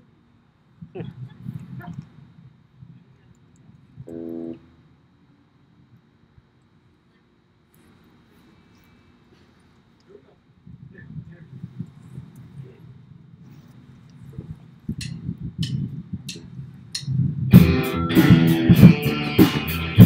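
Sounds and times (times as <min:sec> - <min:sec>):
faint low rumbling: 0:00.0 - 0:19.1.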